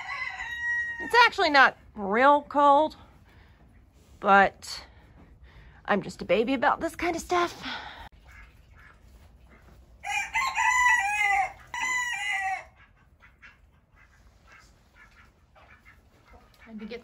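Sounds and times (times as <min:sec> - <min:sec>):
rooster crowing: 0:00.0 - 0:01.1, 0:10.0 - 0:12.8
faint chicken clucks: 0:08.2 - 0:17.0.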